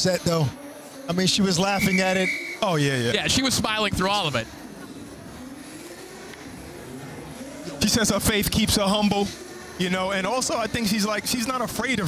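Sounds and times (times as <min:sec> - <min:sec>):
seated crowd background noise: 0:00.0 - 0:12.0.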